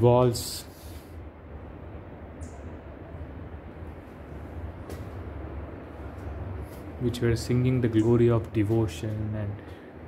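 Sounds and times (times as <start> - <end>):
low outdoor rumble: 0.0 - 10.0
high chirp: 2.3 - 2.8.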